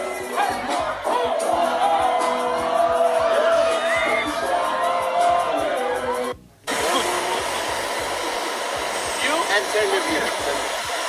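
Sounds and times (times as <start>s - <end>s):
music: 0.0s - 7.5s
crowd cheering: 0.0s - 10.6s.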